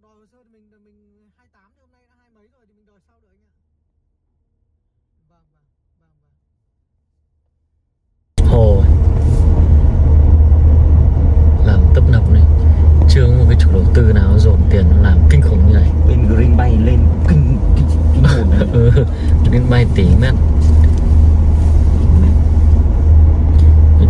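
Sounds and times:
people talking indistinctly: 8.4s - 9.0s, 11.6s - 20.4s
car cabin rumble on rough road: 8.4s - 24.0s.

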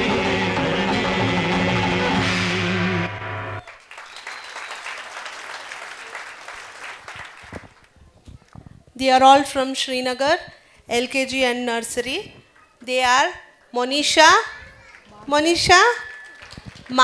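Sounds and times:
song music: 0.0s - 3.6s
audience clapping: 3.6s - 8.0s, 16.2s - 17.0s.

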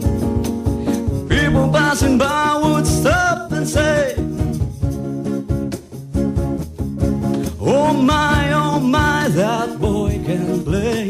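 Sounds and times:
electric guitar reggae strumming: 0.0s - 11.0s
person singing: 0.8s - 4.4s, 7.4s - 11.0s.

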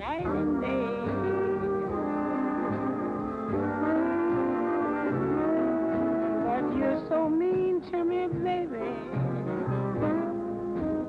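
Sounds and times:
jazz horn section chords: 0.0s - 11.0s.

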